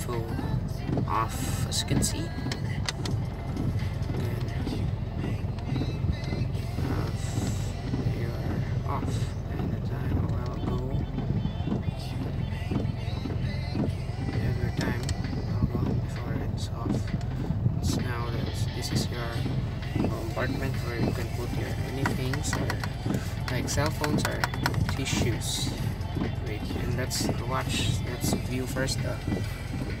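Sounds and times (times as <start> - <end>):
music with vocals from car stereo: 0.0 - 30.0
vehicle low rumble: 0.0 - 30.0.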